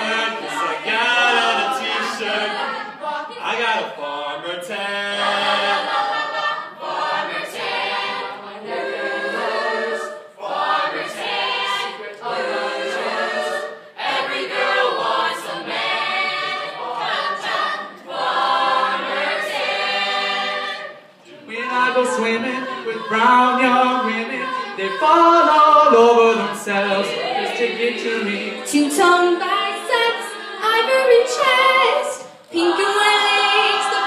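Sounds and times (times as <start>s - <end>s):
young singers singing a cappella: 0.0s - 34.0s.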